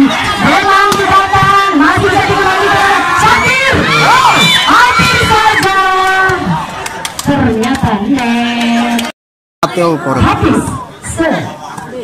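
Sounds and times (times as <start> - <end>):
crowd shouting and cheering: 0.0 - 12.0.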